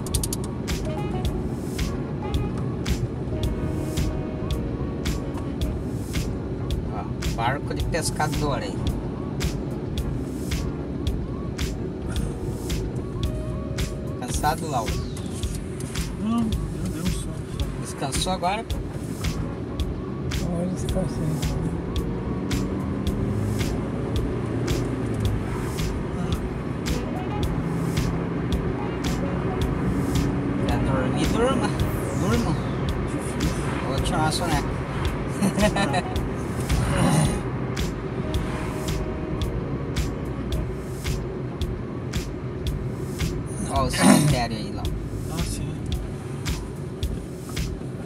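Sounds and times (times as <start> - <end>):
car engine hum: 0.0 - 48.0
road noise: 0.0 - 48.0.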